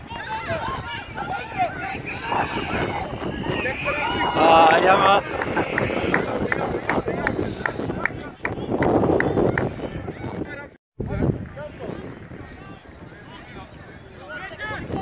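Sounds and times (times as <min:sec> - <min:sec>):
loud shout: 0:00.0 - 0:08.3
voices calling and shouting: 0:00.0 - 0:15.0.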